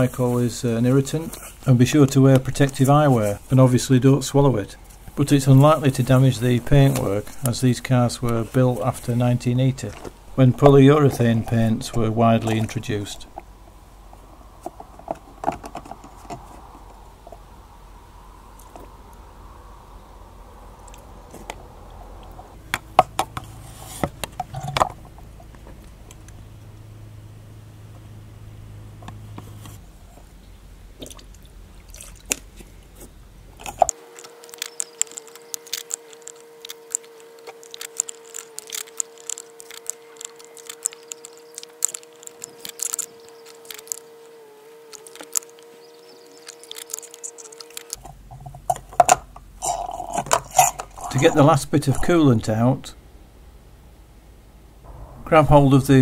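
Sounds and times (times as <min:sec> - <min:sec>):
faint steady hum: 0:00.0 - 0:56.0.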